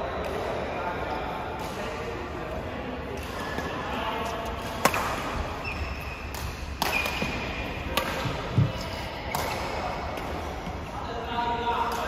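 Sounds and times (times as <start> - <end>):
racket hitting shuttlecock: 4.6 - 5.4, 6.2 - 8.5
shoe squeaks on court: 5.6 - 6.3.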